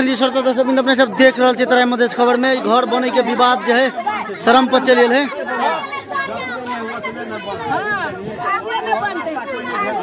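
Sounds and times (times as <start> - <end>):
people arguing: 0.0 - 10.0.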